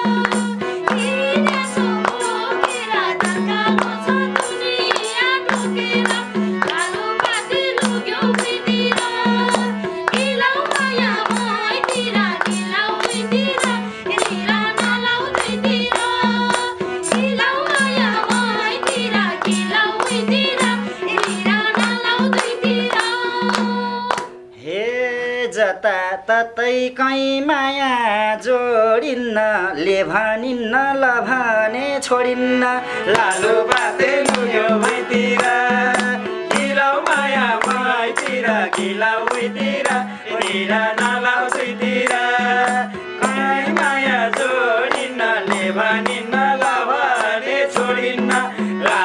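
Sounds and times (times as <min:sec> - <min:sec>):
hand drum beating: 0:00.0 - 0:24.3, 0:33.1 - 0:49.0
harmonium: 0:00.0 - 0:25.4, 0:28.2 - 0:49.0
person singing: 0:00.0 - 0:49.0
hand drum strokes: 0:05.7 - 0:24.1.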